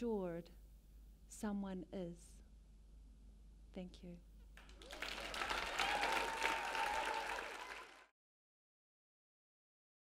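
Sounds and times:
audience applauding: 4.6 - 8.1.

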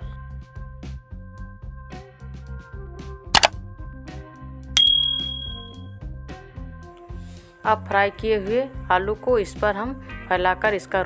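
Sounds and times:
bright bell ding: 4.8 - 5.7
soft background music: 6.3 - 11.0.

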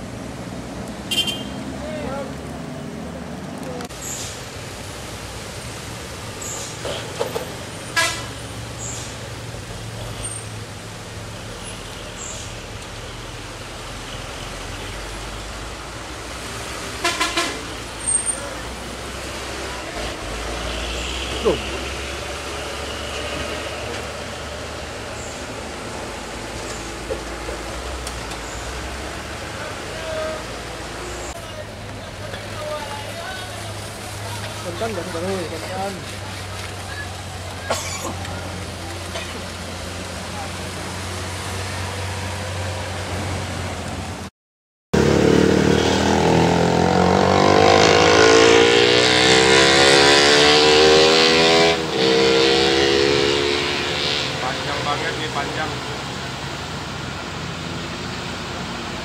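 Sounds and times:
vehicle engines running: 0.0 - 44.3, 45.0 - 59.0
short vehicle horn toots: 1.1 - 1.6.

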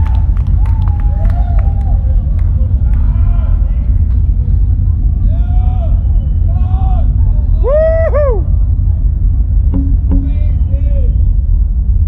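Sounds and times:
low droning rumble from speakers: 0.0 - 12.0.

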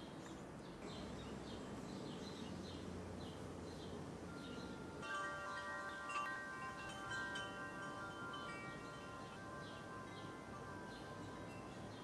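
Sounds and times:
wind chimes ringing: 4.3 - 12.0.

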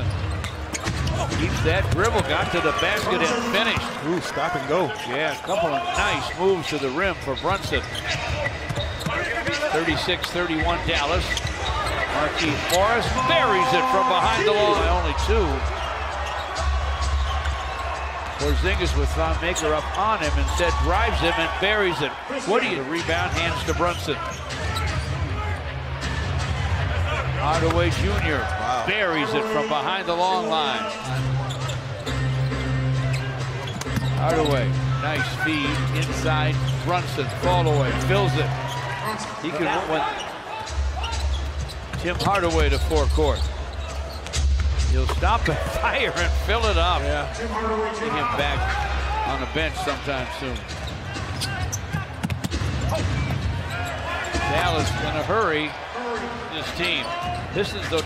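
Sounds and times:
arena crowd noise: 0.0 - 58.0.

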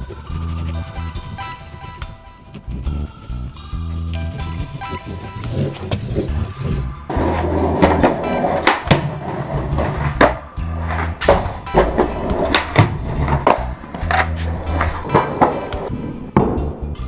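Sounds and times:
music with steady beat: 0.0 - 17.0
skateboard rolling and grinding: 0.0 - 17.0
skateboard clacks: 4.5 - 16.8.

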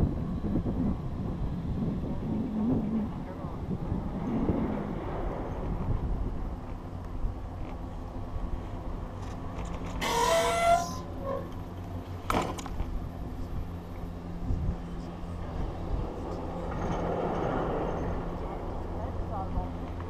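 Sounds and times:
wind on microphone: 0.0 - 9.2, 12.9 - 20.0
chairlift rumble: 0.0 - 20.0.

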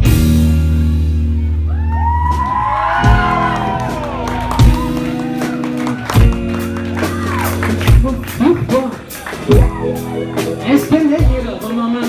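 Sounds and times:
funk band playing: 0.0 - 12.0
held bass notes: 0.0 - 12.0.

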